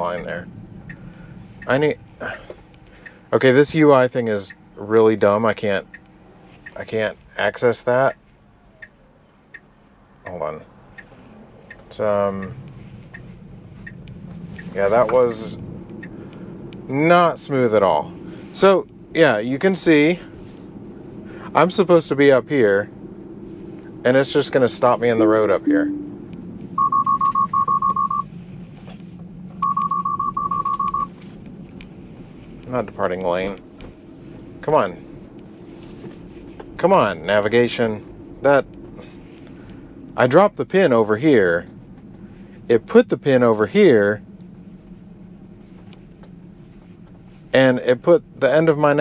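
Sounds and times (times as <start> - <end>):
turn signal ticking: 0.0 - 4.8, 5.6 - 7.0, 8.0 - 17.0, 24.9 - 28.4, 29.0 - 34.1
low road and cabin hum: 0.0 - 49.0
high-pitched warning chime beeping: 25.2 - 28.3, 29.6 - 31.1.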